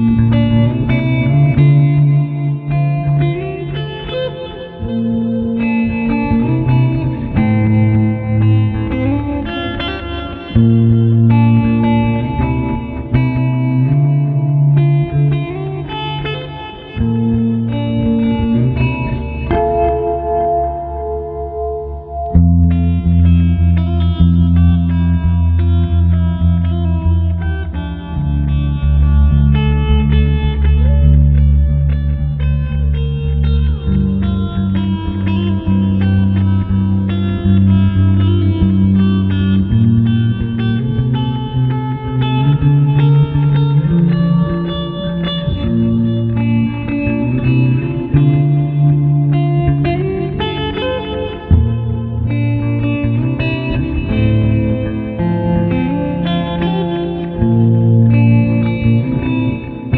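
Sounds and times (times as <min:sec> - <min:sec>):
ambient electric guitar with delay: 0:00.0 - 0:59.9.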